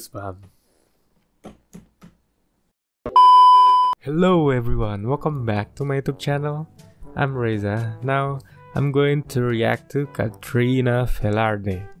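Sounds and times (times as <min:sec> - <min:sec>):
electronic beep tone: 0:03.1 - 0:04.0.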